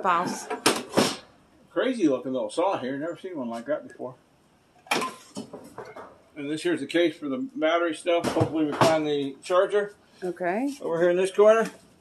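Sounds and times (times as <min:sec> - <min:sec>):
tools knocking and rattling: 0:04.8 - 0:06.2.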